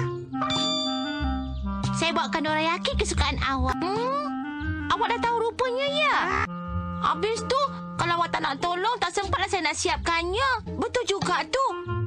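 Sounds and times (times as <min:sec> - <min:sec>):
soft background music: 0:00.0 - 0:12.0
bell-like ding: 0:00.4 - 0:01.5.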